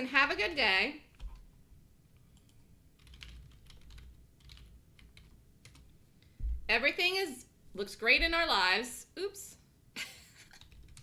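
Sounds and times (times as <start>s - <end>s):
computer keyboard keystrokes: 2.4s - 5.9s, 10.5s - 11.0s.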